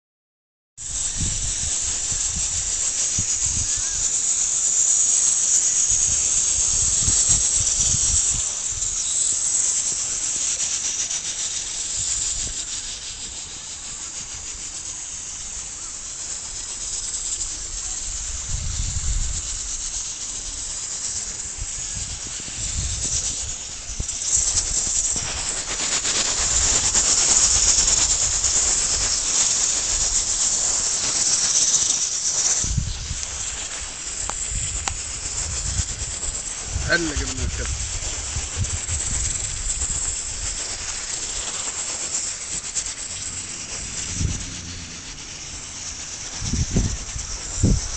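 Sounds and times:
high-pitched outdoor hiss: 0.8 - 47.9
wind rumble on microphone: 0.9 - 4.4, 5.0 - 9.0, 17.5 - 30.5, 32.6 - 41.4, 42.5 - 47.9.

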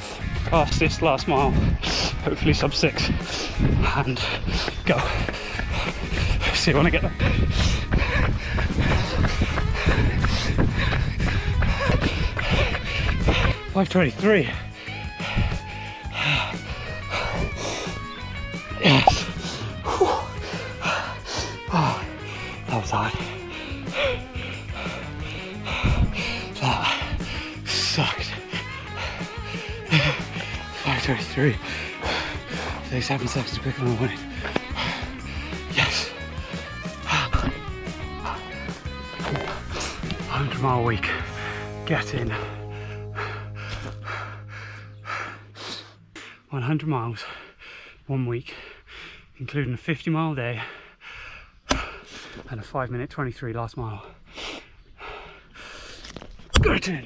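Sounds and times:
background music: 0.0 - 47.4
runner breathing heavily: 0.0 - 52.7, 53.8 - 56.5.

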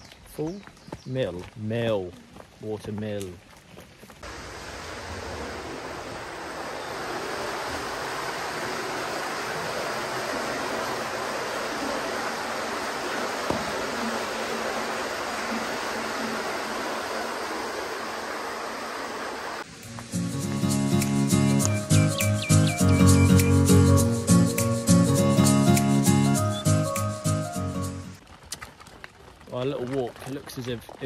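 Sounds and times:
water rushing at waterwheel: 4.2 - 19.8
background music: 19.8 - 28.2.

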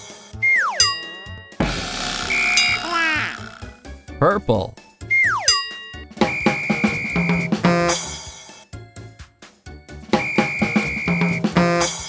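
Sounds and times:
children's music with drum beat: 6.1 - 12.0.

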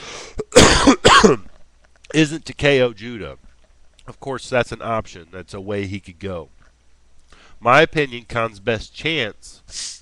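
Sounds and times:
man coughing: 0.4 - 1.5.

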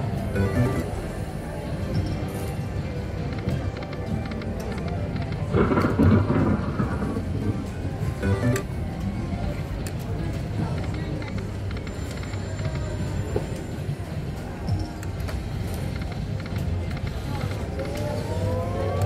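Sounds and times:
gaming room hum and chatter: 0.0 - 19.0
poker machine electronic music: 0.1 - 1.2, 8.1 - 8.9
rising electronic tones: 0.4 - 0.9, 8.2 - 8.7.

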